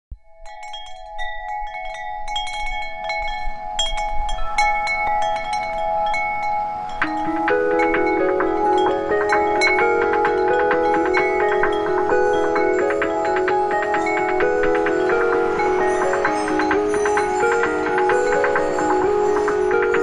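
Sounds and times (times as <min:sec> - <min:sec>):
lower ringing notes: 0:00.1 - 0:20.0
wind chimes ringing: 0:00.2 - 0:20.0.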